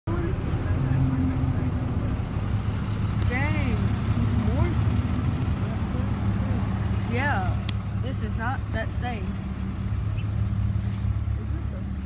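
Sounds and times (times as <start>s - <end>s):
car engine rumble: 0.0s - 12.0s
road noise inside car: 0.1s - 12.0s.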